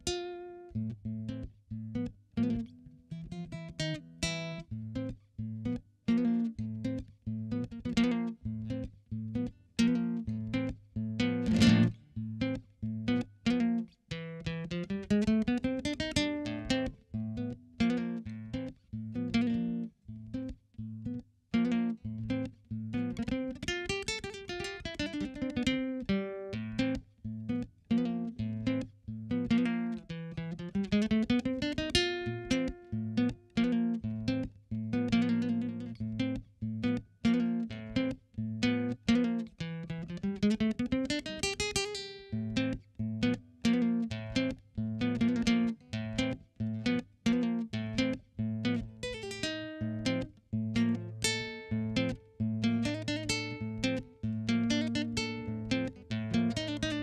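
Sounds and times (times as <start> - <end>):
classical guitar fingerstyle: 0.0 - 57.0.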